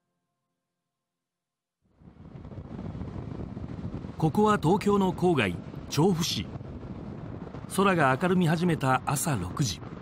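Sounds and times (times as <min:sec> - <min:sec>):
vehicle road and wind noise: 0:01.9 - 0:10.0.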